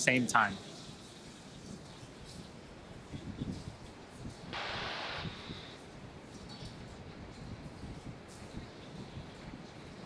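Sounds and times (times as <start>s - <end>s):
low wind-like rumble: 2.8s - 10.0s
short burst of hiss: 4.6s - 5.8s.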